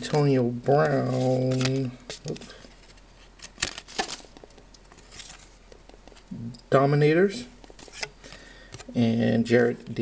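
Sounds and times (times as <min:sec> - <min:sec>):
trading cards snapping and rustling: 0:00.8 - 0:06.2.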